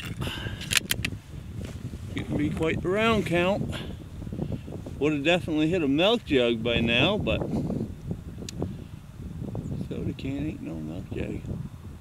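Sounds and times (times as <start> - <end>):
low wind rumble: 0.0 - 12.0
rifle bolt clicking: 0.6 - 1.1.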